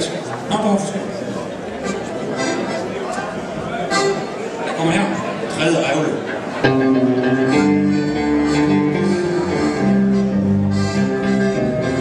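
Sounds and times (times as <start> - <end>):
live band playing: 1.8 - 12.0
guitar chords: 6.6 - 12.0.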